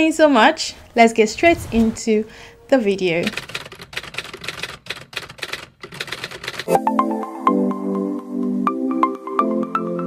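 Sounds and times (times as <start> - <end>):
typewriter key clicks: 3.3 - 6.8.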